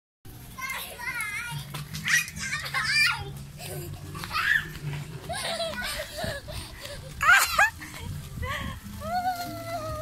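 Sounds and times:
children calling out: 0:02.0 - 0:06.4, 0:09.0 - 0:10.0.

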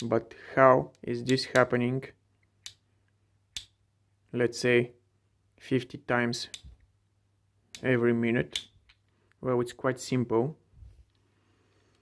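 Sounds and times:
sharp metal clicks: 0:03.5 - 0:03.8, 0:07.7 - 0:09.0.

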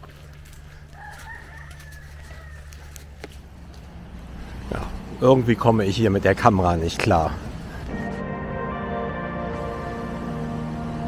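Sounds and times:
steady low hum: 0:03.0 - 0:11.0.

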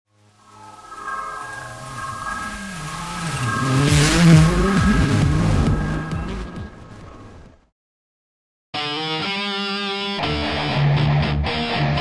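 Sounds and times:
held electronic tones: 0:00.2 - 0:07.0
car engine: 0:00.2 - 0:07.6
whoosh: 0:00.2 - 0:07.6.

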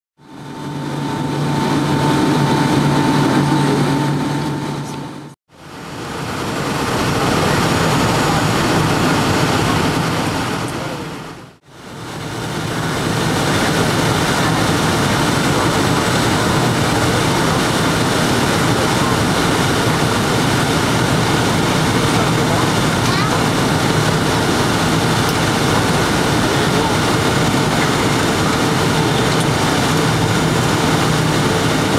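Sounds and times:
jet engine and airflow cabin noise: 0:00.2 - 0:31.9
low hum with higher tone: 0:00.2 - 0:31.9.

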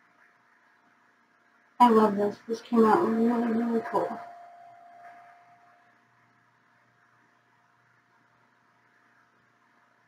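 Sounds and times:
thin steady tone: 0:01.8 - 0:07.1.

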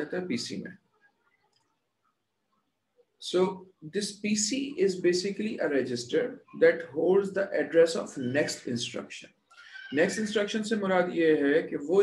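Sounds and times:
man's voice: 0:03.2 - 0:09.3, 0:10.0 - 0:12.0.

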